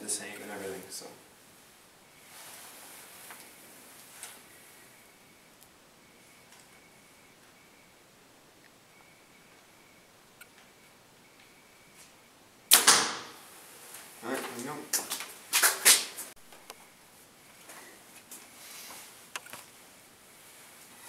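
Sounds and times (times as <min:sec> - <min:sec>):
arrow striking target: 0:12.7 - 0:13.4.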